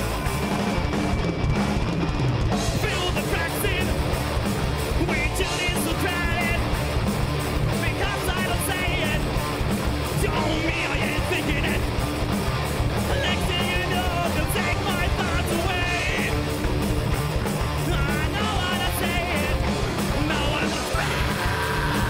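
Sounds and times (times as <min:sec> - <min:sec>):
heavy metal band playing: 0:00.0 - 0:22.0
lead vocalist singing: 0:02.8 - 0:04.0, 0:05.0 - 0:06.6, 0:07.8 - 0:09.2, 0:10.2 - 0:11.9, 0:13.1 - 0:16.4, 0:17.8 - 0:22.0.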